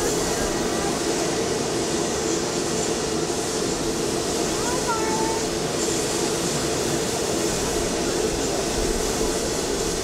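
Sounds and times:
jet aircraft engine rush: 0.0s - 10.0s.

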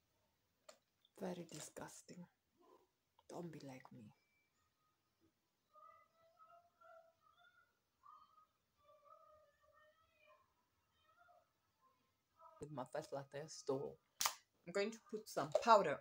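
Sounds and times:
distant high-pitched voice: 5.6s - 12.6s.

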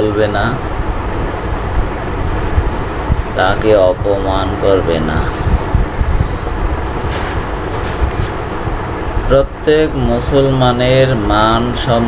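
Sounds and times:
loud low rumbling: 0.0s - 12.0s.

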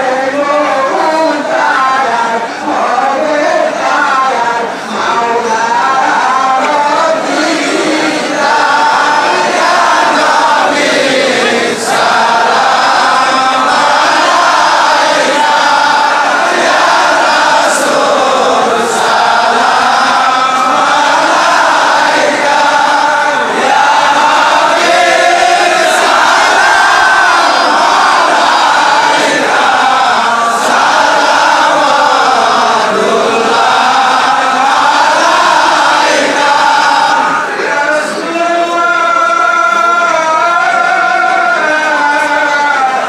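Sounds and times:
crowd of men chanting: 0.0s - 43.0s.

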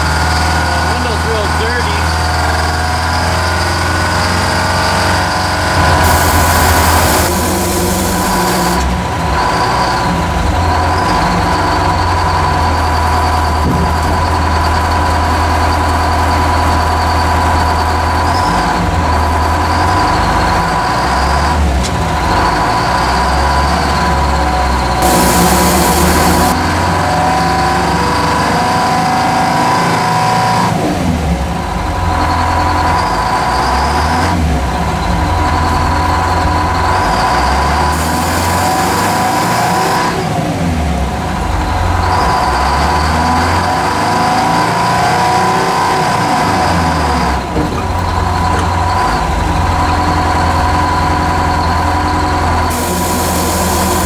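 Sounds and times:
diesel engine under load: 0.0s - 54.0s
bursts of hiss: 5.8s - 8.8s, 25.0s - 26.6s, 52.7s - 54.0s
high whine: 5.8s - 9.0s, 24.7s - 27.5s, 52.6s - 54.0s.

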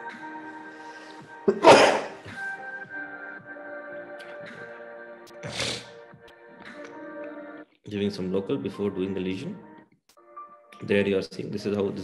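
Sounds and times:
background music with held notes: 0.0s - 12.0s
loud sneeze: 1.5s - 2.2s.

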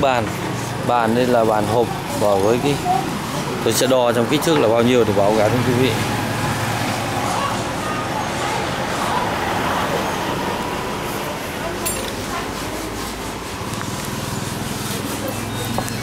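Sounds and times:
faint indistinct voices: 0.0s - 16.0s
traffic noise: 0.0s - 16.0s.

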